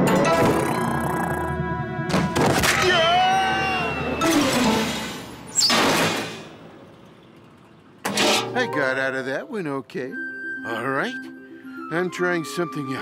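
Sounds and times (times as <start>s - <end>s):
loud cartoon crash: 4.2s - 6.5s.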